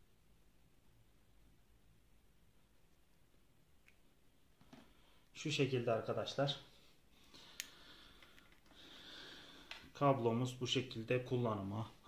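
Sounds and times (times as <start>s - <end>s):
soft hiss: 0.0s - 12.0s.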